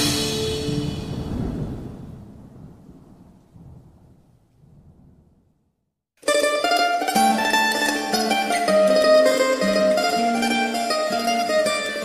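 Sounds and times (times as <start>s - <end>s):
low rumble: 0.3s - 5.8s.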